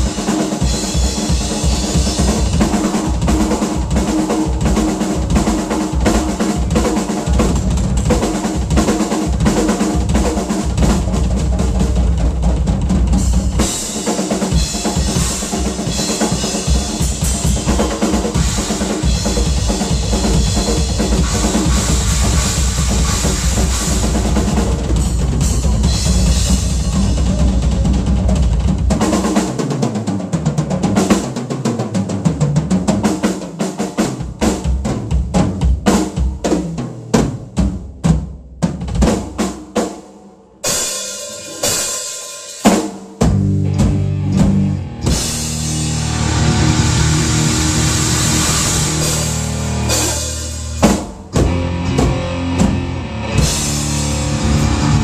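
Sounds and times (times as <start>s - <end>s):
bass drums: 0.0s - 29.5s, 42.7s - 55.0s
cymbals crashing: 40.7s - 42.6s, 45.0s - 55.0s.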